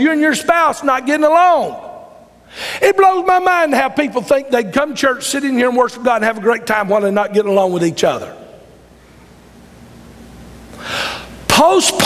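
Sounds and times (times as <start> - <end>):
man speaking: 0.0 - 2.1, 2.8 - 8.5, 11.5 - 12.0
low room hum: 0.0 - 12.0
man's sharp intake of breath: 2.4 - 2.8, 10.7 - 11.4.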